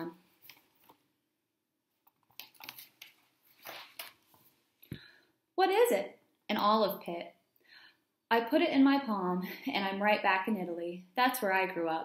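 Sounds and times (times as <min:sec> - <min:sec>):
paper pages rustling: 0:00.3 - 0:01.1, 0:02.0 - 0:04.6.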